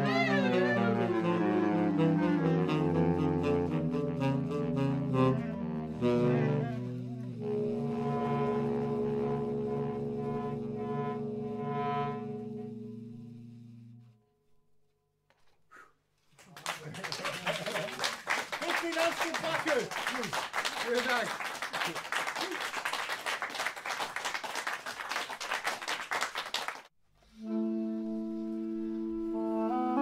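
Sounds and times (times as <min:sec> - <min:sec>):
clarinet and saxophones playing jazz: 0:00.0 - 0:13.4, 0:27.2 - 0:30.0.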